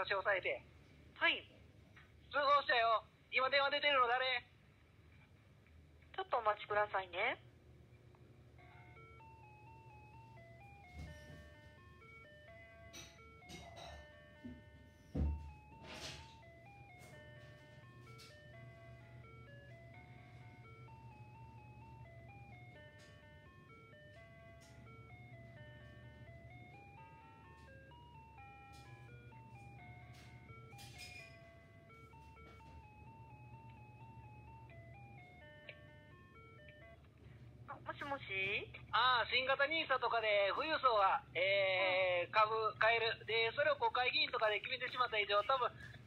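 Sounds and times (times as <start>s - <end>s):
telephone hold music: 8.0s - 46.0s.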